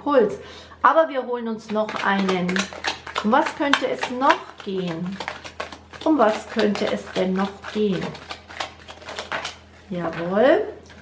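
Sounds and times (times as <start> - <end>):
cards being shuffled: 1.7 - 10.4.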